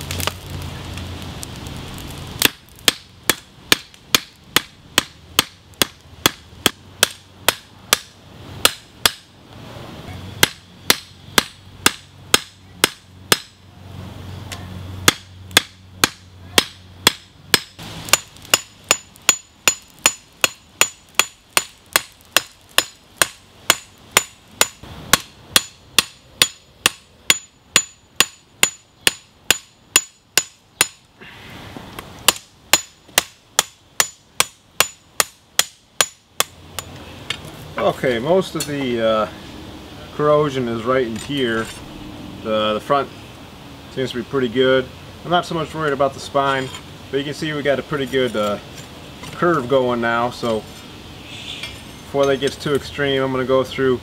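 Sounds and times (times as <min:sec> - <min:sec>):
hammer striking hot steel on anvil: 0:02.4 - 0:09.3, 0:10.4 - 0:13.6, 0:15.1 - 0:31.1, 0:32.3 - 0:36.9.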